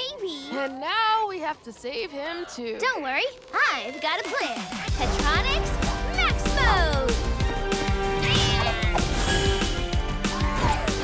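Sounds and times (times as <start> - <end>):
upbeat cartoon music: 3.8 - 11.0.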